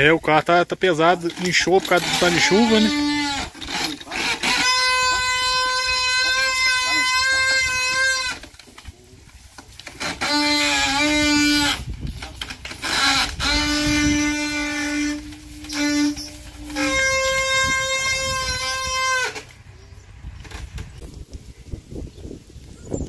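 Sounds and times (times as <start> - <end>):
wooden cart axle whining: 0.8 - 21.4.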